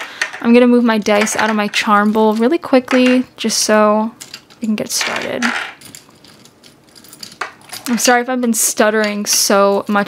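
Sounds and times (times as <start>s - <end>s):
dice and charms clinking in bowl: 4.2s - 8.2s.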